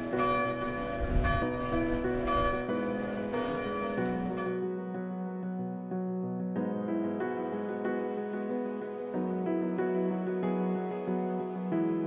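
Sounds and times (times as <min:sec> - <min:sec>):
tower bells ringing: 0:00.0 - 0:04.6.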